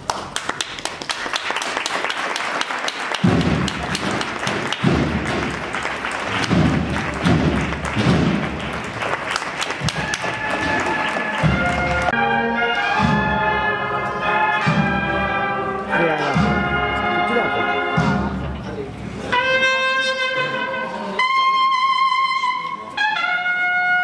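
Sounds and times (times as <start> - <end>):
crowd applauding: 0.0 - 12.2
crowd cheering: 0.0 - 12.4
deep heavy thuds: 3.2 - 9.0.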